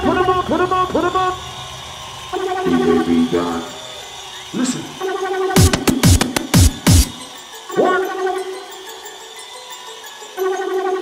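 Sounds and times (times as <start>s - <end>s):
synth line: 2.4s - 8.7s
sustained synth tones: 4.5s - 8.6s.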